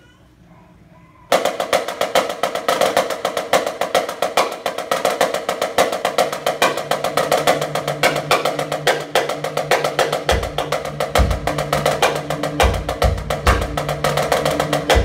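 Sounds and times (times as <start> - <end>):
marching snare drum: 1.3 - 15.0.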